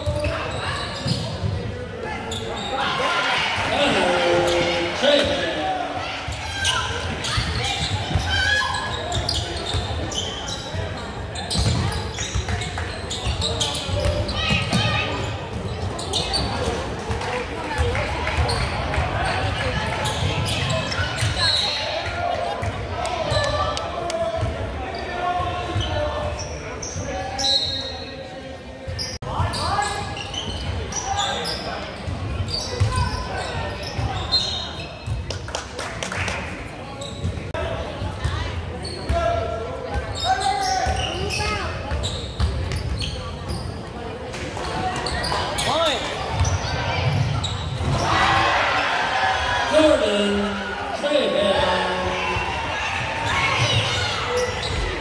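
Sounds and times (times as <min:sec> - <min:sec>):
crowd voices and shouts: 0:00.0 - 0:55.0.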